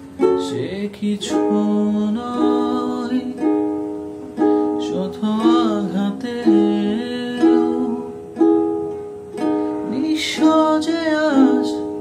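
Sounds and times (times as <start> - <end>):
plucked-string accompaniment: 0.0 - 12.0
man singing slow song: 0.2 - 3.8, 4.6 - 8.5, 9.7 - 12.0.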